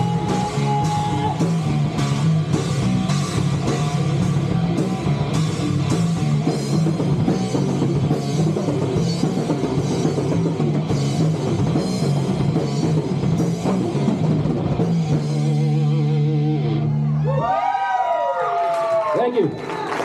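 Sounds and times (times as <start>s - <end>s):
live rock band playing: 0.0s - 17.4s.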